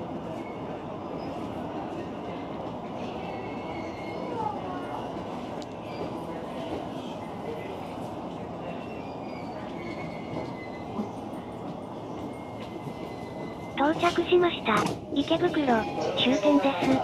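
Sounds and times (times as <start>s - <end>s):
high brake squeals: 8.8s - 11.2s, 12.3s - 13.8s.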